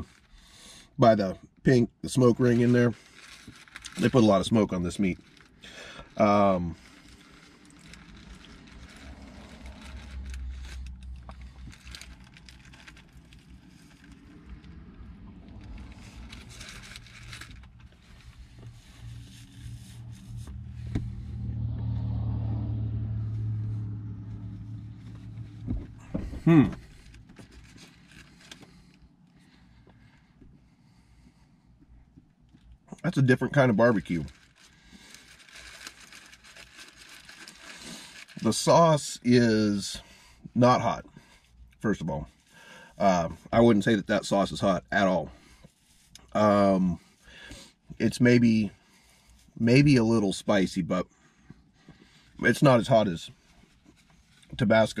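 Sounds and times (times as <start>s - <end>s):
quiet car cabin background: 0.0s - 55.0s
low motor vehicle rumble: 2.0s - 55.0s
paper wrapper crackling: 2.1s - 21.2s, 24.6s - 30.2s, 32.6s - 38.8s.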